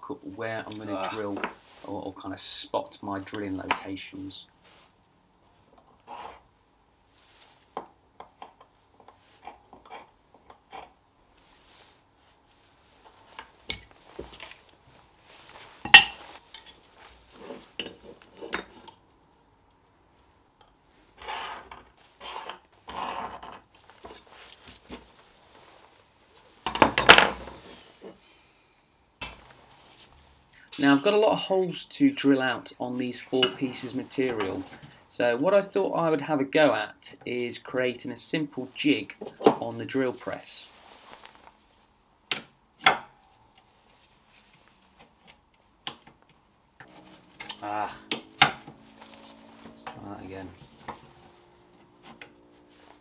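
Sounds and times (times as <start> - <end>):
sharp metal clink: 13.7 - 14.0
metal scraping: 46.8 - 52.6.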